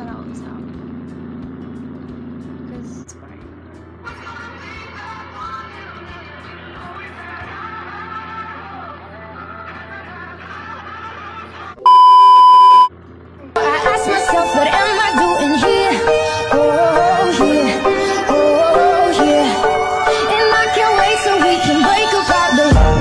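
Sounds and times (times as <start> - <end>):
music: 0.0 - 11.9, 13.6 - 23.0
steady electronic beep tone: 11.8 - 12.9.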